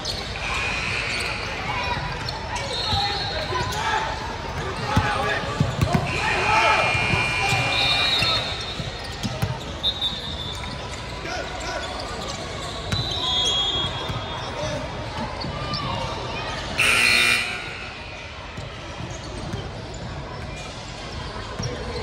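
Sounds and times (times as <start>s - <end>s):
sneakers squeaking: 0.0s - 22.0s
voices chattering in echoing hall: 0.0s - 22.0s.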